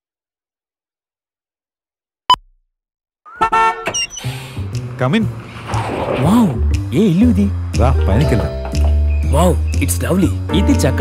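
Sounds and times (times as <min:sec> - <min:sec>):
car horn honk: 0:03.3 - 0:04.2.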